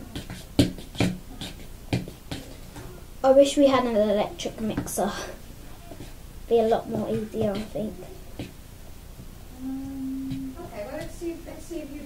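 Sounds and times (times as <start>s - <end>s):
fork beating in plastic bowl: 0.0s - 2.6s.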